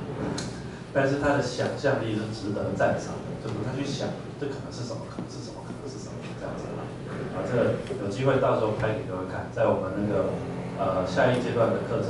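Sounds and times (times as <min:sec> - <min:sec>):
man speaking: 0:00.9 - 0:12.0.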